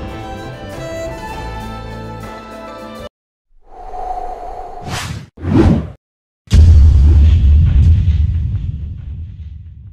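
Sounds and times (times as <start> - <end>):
whoosh: 3.6 - 6.0
deep rumbling boom: 6.5 - 9.8.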